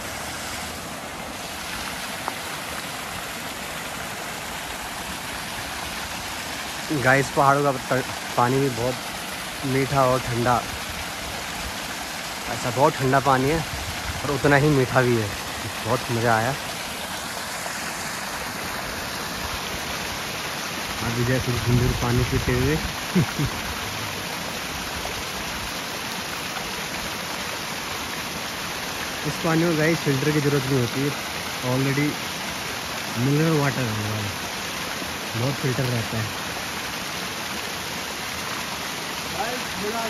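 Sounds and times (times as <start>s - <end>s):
waterfall pouring over rocks: 0.0s - 40.0s.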